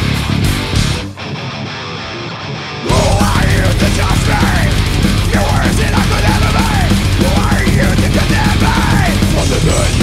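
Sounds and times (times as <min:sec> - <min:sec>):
electric guitar alone: 0:00.0 - 0:10.0
heavy metal band playing: 0:00.0 - 0:10.0.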